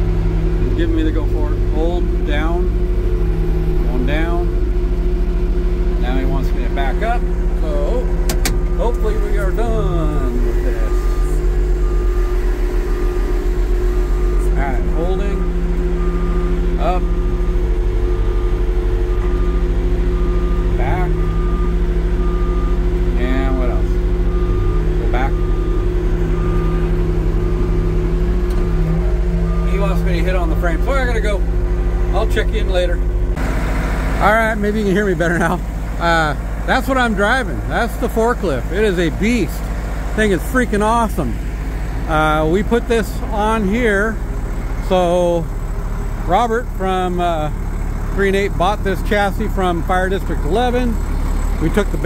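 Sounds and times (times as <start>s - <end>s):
forklift engine running at low revs: 0.0s - 52.0s.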